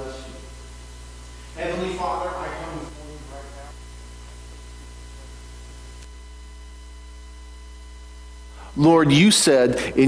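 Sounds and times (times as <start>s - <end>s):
man speaking: 0.0s - 0.5s, 1.6s - 3.8s, 8.6s - 10.0s
electrical mains hum: 0.0s - 10.0s.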